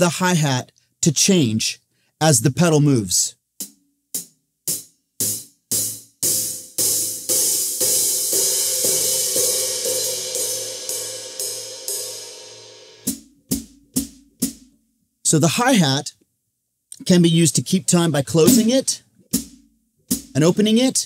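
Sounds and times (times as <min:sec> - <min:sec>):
hi-hat struck with drumstick: 0:03.6 - 0:14.7, 0:18.4 - 0:20.7.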